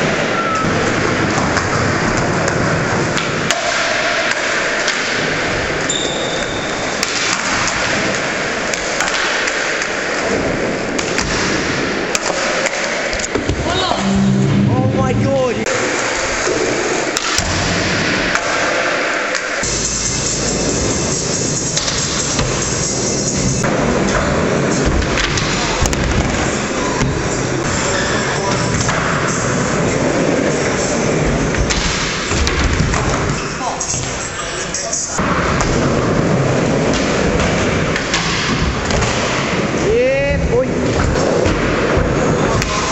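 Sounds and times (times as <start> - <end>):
skateboard clacks: 0.0 - 13.5, 15.8 - 34.2
skateboard wheels rolling on concrete: 0.0 - 13.7, 15.8 - 42.9.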